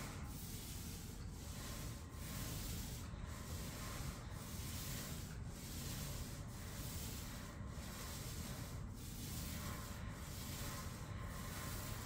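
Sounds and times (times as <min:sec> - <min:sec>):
paint roller rubbing on ceiling: 0:00.0 - 0:12.0.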